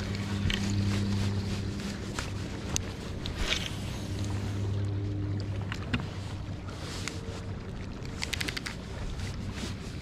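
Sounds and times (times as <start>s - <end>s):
electric trolling motor hum: 0.0s - 6.6s
light clicks: 8.0s - 8.8s.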